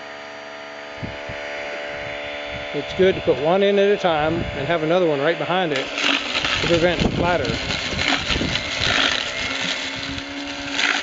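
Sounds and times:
garbage disposal grinding fruit: 0:02.6 - 0:11.0
grating bursts: 0:02.8 - 0:11.0.

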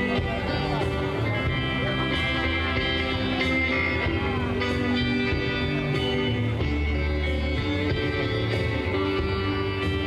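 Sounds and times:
electric guitars: 0:00.0 - 0:10.0
live rock band playing: 0:00.0 - 0:10.0.

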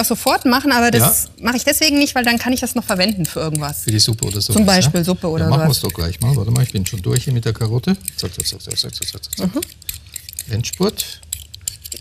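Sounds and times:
peeler scraping a carrot: 0:00.0 - 0:12.0.

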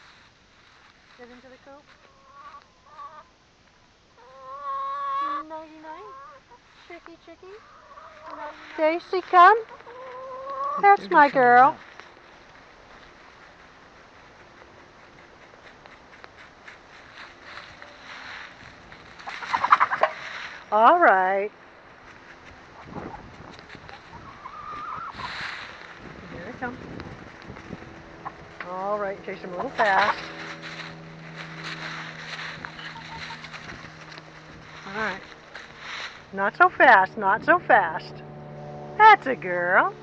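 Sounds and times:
hens clucking and squawking: 0:01.9 - 0:03.3, 0:04.2 - 0:06.8, 0:07.5 - 0:20.8, 0:22.0 - 0:38.2
steady low hum: 0:05.4 - 0:40.0
light rustling: 0:06.5 - 0:20.7, 0:25.0 - 0:36.4.

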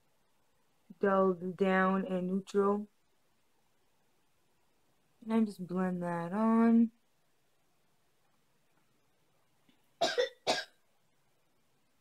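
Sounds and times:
woman coughing: 0:10.0 - 0:10.8.

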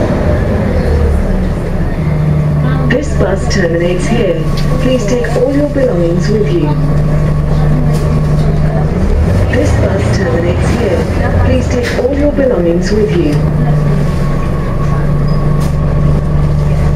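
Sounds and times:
bus diesel engine humming: 0:00.0 - 0:16.9.

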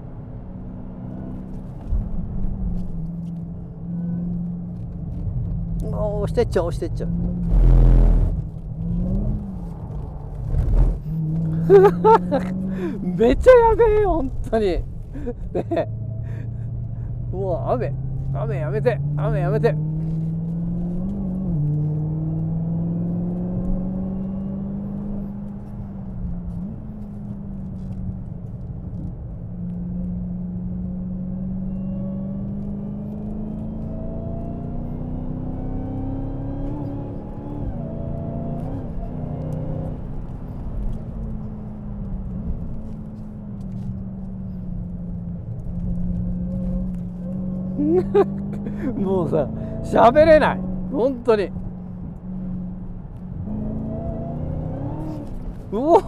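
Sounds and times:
car engine running: 0:00.0 - 0:31.4, 0:32.3 - 0:56.0.

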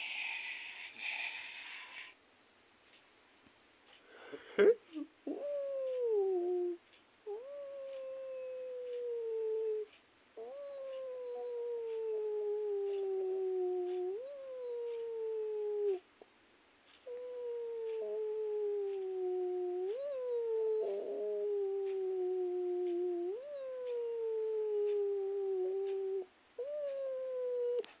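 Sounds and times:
animal wailing cries: 0:19.4 - 0:27.9.

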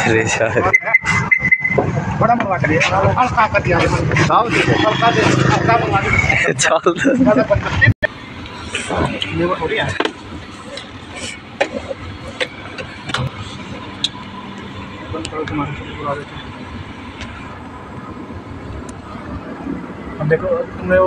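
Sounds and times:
car engine and road noise: 0:00.0 - 0:21.0
faint voices: 0:00.0 - 0:21.0.

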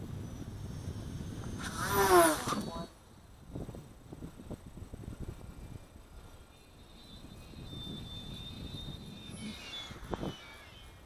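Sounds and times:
model airplane motor whine: 0:00.0 - 0:03.0, 0:05.2 - 0:11.0
wind rumble on microphone: 0:00.0 - 0:11.0.

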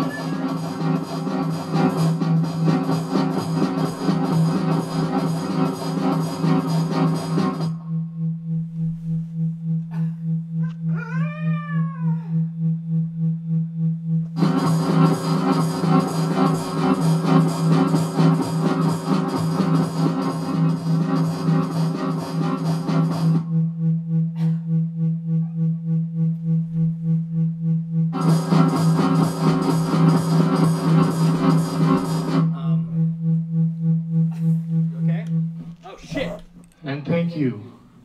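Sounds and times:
voice gliding call: 0:00.0 - 0:00.6
pulsing electronic keyboard note: 0:00.0 - 0:11.0, 0:12.2 - 0:37.5.

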